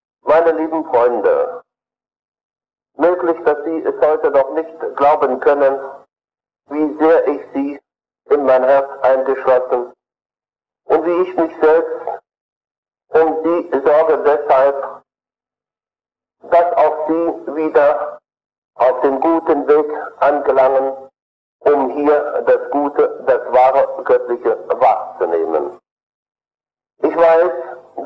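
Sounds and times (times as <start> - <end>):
man speaking: 0.3 - 1.6, 3.0 - 6.0, 6.7 - 9.9, 10.9 - 12.2, 13.1 - 15.0, 16.4 - 18.2, 18.8 - 25.8, 27.0 - 28.0.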